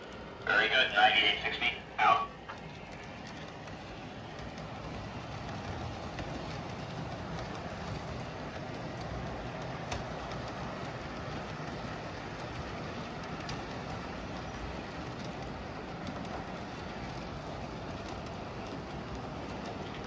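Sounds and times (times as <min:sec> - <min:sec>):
model train wheels rumbling: 0:00.0 - 0:20.0.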